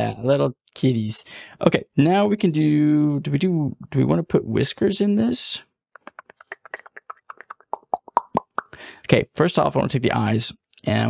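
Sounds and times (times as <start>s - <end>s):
mouth pops: 6.0s - 8.8s.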